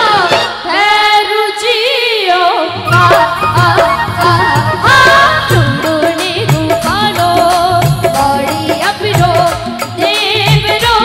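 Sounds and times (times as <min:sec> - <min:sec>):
drum accompaniment: 0:00.0 - 0:01.3, 0:02.8 - 0:11.0
women singing devotional song: 0:00.0 - 0:11.0.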